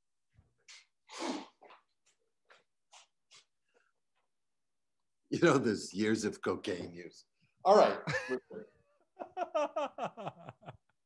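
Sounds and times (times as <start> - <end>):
person blowing nose: 1.1 - 1.6.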